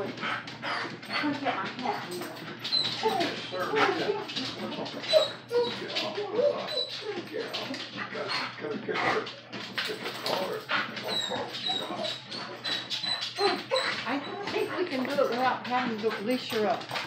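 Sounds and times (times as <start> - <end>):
dog whining and whimpering: 0.0 - 15.4.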